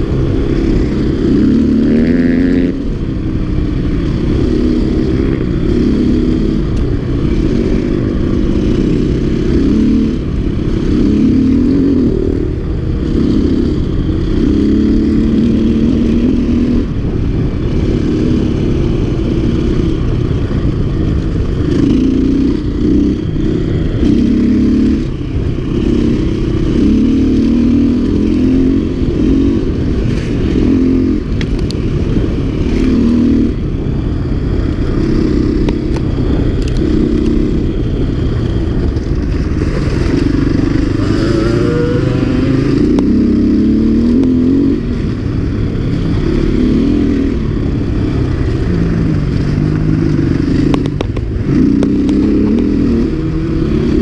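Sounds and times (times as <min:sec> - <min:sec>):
dirt bike engine revving: 0:00.0 - 0:54.0
steady low noise: 0:00.0 - 0:54.0.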